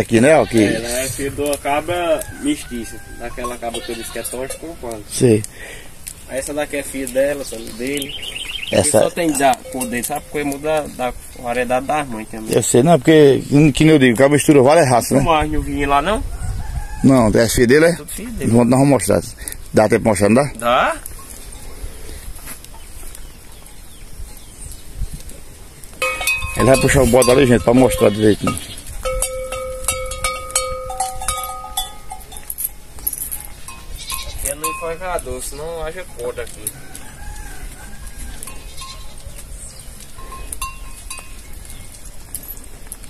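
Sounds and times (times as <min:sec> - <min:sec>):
goats bleating: 0:00.0 - 0:01.2, 0:02.4 - 0:05.1, 0:27.2 - 0:29.0
wind rumble on microphone: 0:15.2 - 0:18.6, 0:21.1 - 0:32.4.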